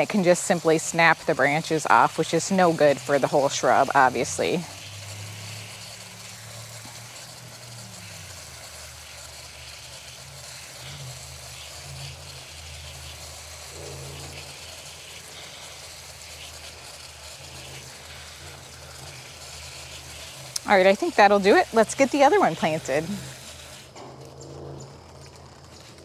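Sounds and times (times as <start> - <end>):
hose spraying water on soil: 0.0 - 26.0
low engine hum: 1.2 - 26.0.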